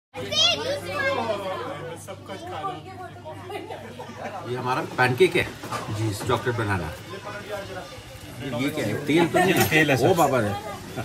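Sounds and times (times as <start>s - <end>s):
people talking in background: 0.2s - 11.0s.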